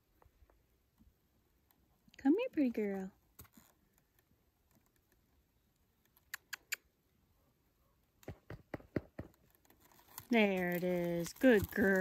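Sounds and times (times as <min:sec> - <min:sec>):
tongue clicks: 0:06.2 - 0:06.9.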